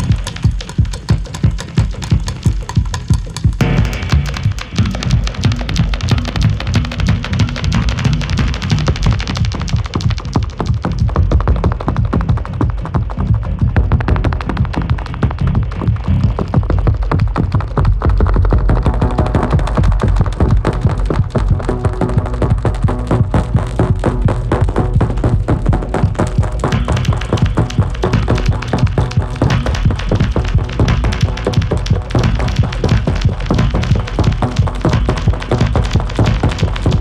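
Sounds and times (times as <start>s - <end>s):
rapid metallic hits and clicks: 0.0s - 37.0s
steady low bass: 0.0s - 37.0s.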